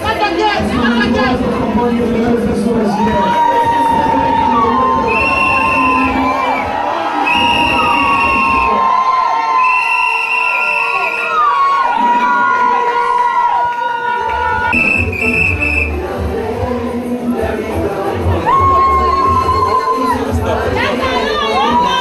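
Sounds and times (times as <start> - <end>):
crowd cheering and shouting: 0.0 - 22.0
long whistle blasts: 5.1 - 6.7, 7.3 - 8.7, 9.6 - 11.5, 14.7 - 15.9.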